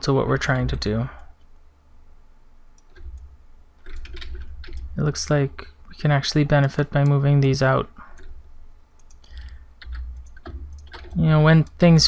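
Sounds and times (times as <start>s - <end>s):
computer mouse clicks: 9.0s - 11.8s.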